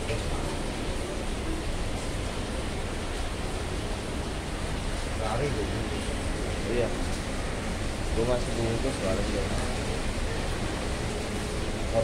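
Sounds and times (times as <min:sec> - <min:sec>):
heavy rain pouring: 0:00.0 - 0:12.0.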